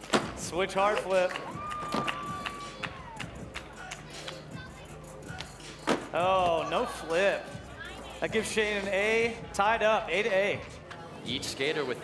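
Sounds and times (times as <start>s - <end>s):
crowd: 0.0s - 12.0s
faint background music: 0.0s - 12.0s.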